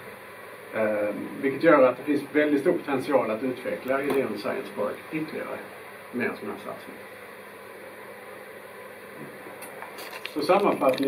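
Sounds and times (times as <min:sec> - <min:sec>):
room noise hiss: 0:00.0 - 0:11.0.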